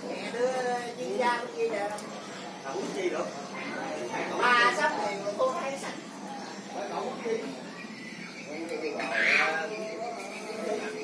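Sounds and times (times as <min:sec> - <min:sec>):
murmured speech: 0:00.0 - 0:11.0.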